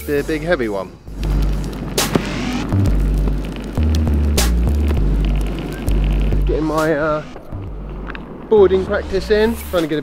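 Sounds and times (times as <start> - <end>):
skateboard wheels rolling on tarmac: 0.0 - 10.0
music with deep bass line: 1.1 - 6.9.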